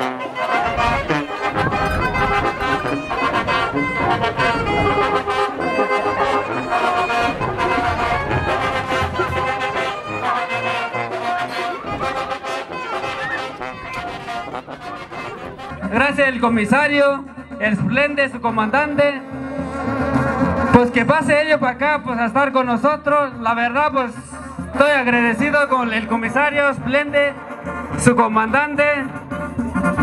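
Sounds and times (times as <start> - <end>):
brass band music: 0.0 - 30.0.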